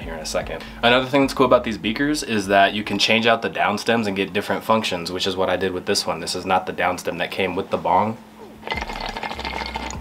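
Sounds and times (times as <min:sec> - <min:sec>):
water sloshing in glass bong: 0:08.6 - 0:10.0.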